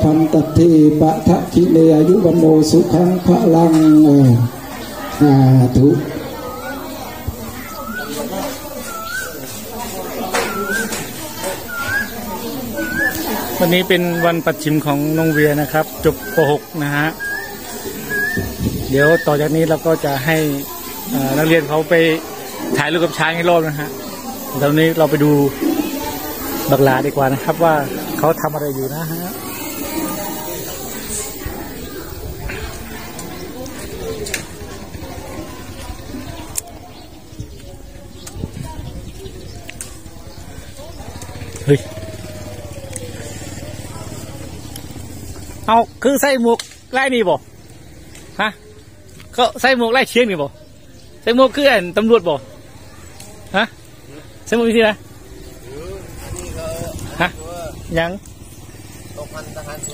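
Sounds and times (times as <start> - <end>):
animal chirping call: 6.3 - 32.2.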